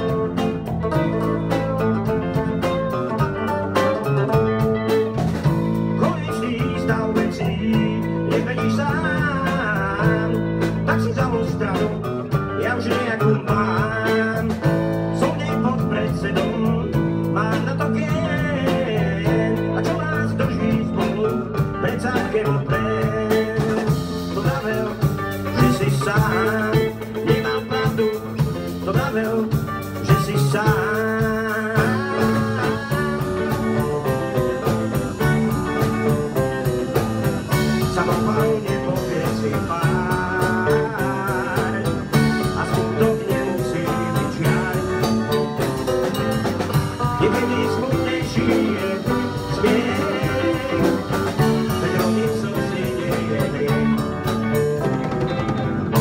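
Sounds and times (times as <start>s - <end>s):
live rock band playing: 0.0s - 56.0s
man singing: 0.0s - 56.0s.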